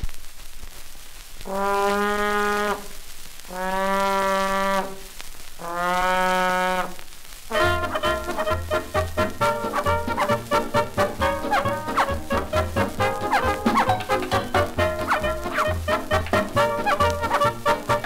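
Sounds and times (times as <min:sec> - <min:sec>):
band playing bouncy fox-trot: 0:07.5 - 0:18.0
low brass horn notes: 0:07.5 - 0:18.0.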